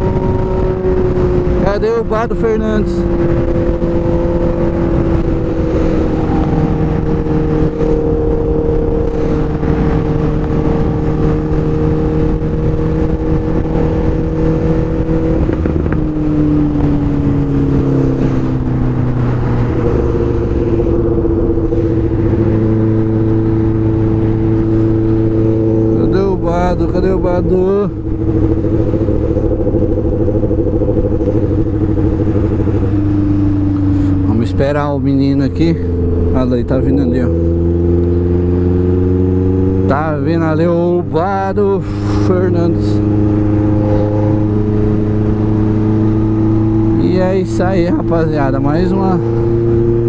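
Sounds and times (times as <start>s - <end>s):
motorcycle engine cruising: 0.0s - 50.0s
wind rushing over microphone: 0.0s - 50.0s.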